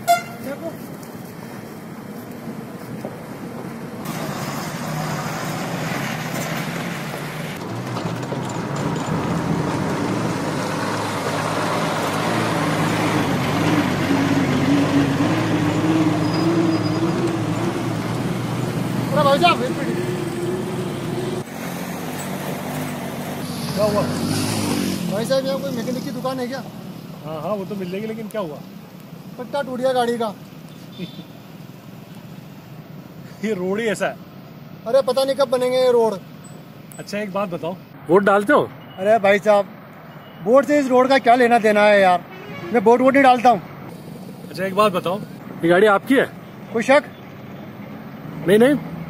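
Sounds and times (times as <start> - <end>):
tyre noise on dirt road: 0.0 - 27.1
truck engine hum: 0.0 - 49.0.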